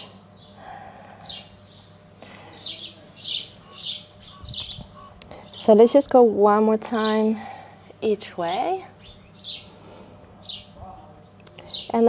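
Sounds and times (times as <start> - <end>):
small birds chirping: 0.0 - 6.0, 6.8 - 12.0.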